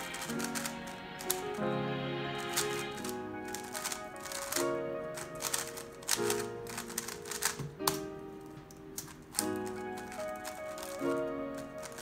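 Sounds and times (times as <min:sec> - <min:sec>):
plastic clacking of speedcube: 0:00.0 - 0:01.6, 0:02.4 - 0:08.1, 0:08.7 - 0:12.0
background music with held chords: 0:00.0 - 0:12.0.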